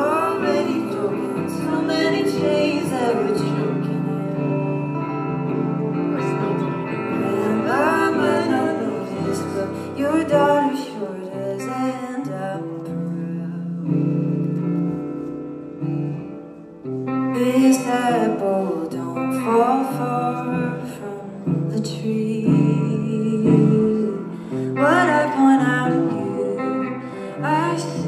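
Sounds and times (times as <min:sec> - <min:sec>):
person singing: 0:00.0 - 0:15.2, 0:17.1 - 0:28.0
acoustic guitar: 0:00.0 - 0:28.0
electric guitar: 0:00.0 - 0:28.0.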